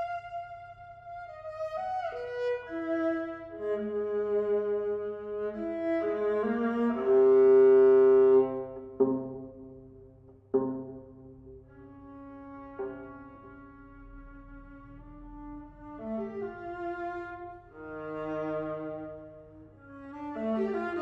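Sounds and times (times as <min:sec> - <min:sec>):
clarinet: 0:00.0 - 0:09.7, 0:11.6 - 0:21.0
viola: 0:00.0 - 0:21.0.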